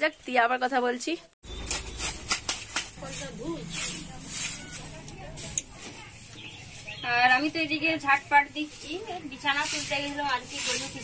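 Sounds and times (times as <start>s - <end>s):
broom sweeping concrete floor: 1.7s - 6.9s, 8.6s - 11.0s.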